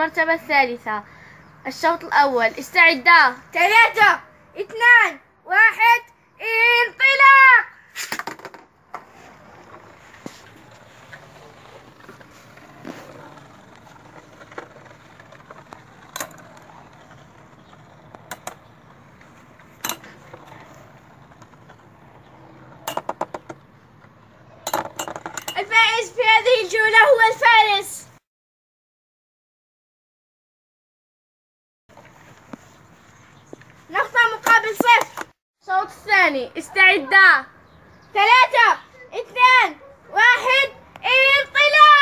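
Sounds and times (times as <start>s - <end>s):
children shouting excitedly: 4.8s - 7.8s, 38.2s - 42.0s.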